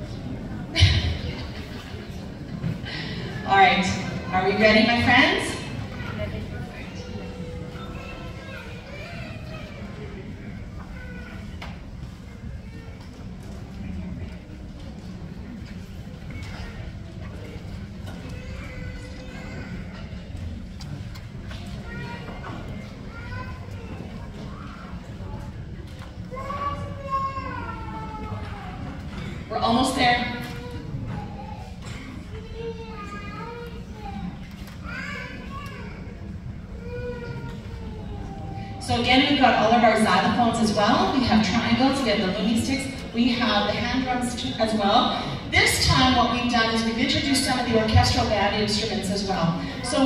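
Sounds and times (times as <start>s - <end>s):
chatter of many voices: 0.0s - 50.0s
crowded hall rumble: 0.0s - 50.0s.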